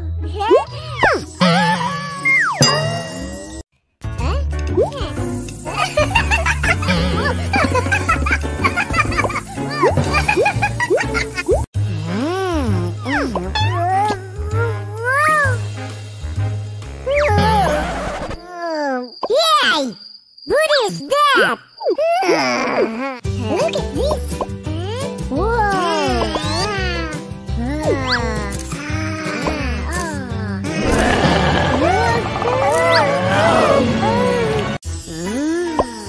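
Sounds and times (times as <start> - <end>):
background music: 0.0 - 18.0, 23.3 - 36.0
cartoon wavering vocal sound: 0.5 - 3.0, 27.6 - 36.0.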